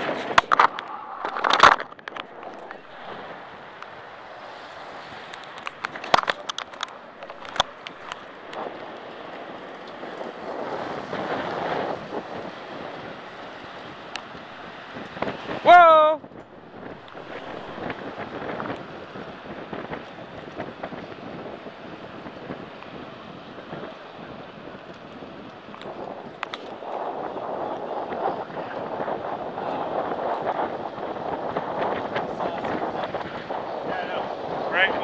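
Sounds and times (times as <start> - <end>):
bicycle road noise: 0.0 - 35.0
wind rushing over microphone: 0.0 - 35.0.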